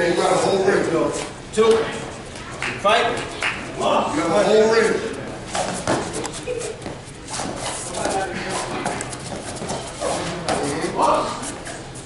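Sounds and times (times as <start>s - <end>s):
feet tapping on foam mat: 5.6s - 11.1s.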